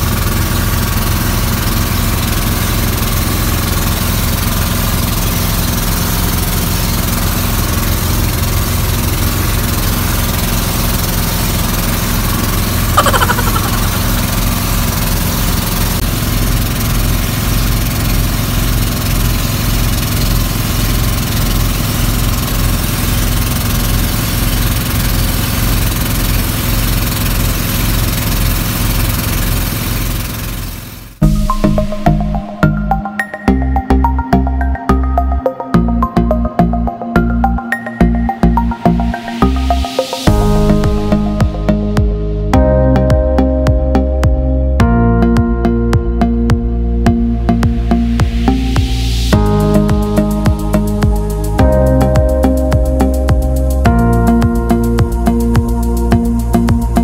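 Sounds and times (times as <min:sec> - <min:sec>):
boat engine running: 0:00.0 - 0:37.6
short falling sound: 0:13.0 - 0:15.3.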